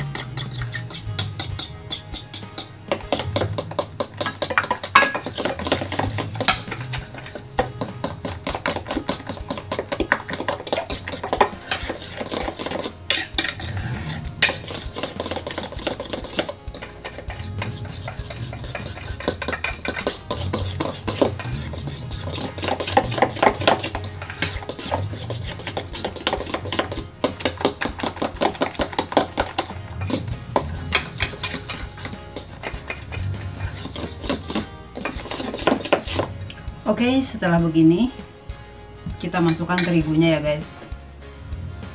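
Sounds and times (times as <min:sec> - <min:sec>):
metal spoon stirring in a bowl: 0:00.0 - 0:36.7, 0:39.2 - 0:40.2.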